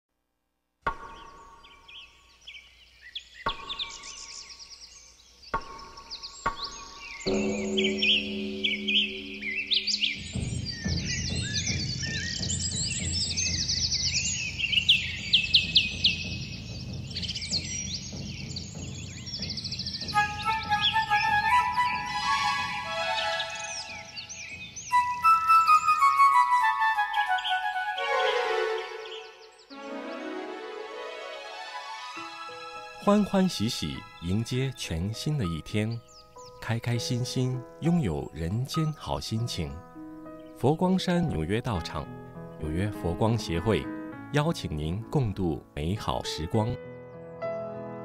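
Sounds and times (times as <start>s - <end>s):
birds chirping: 0.9s - 47.5s
intro music: 5.6s - 34.3s.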